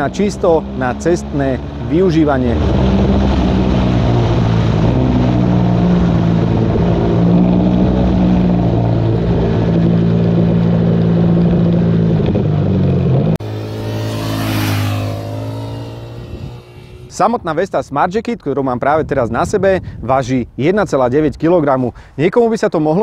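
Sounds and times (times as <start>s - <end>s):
motorcycle engine at speed: 0.0s - 17.2s
motorcycle passing by: 0.0s - 17.2s.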